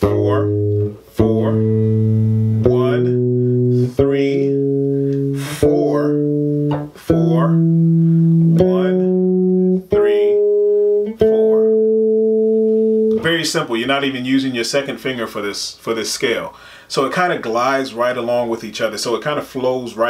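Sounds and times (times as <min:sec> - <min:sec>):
electric bass guitar scale: 0:00.0 - 0:14.2.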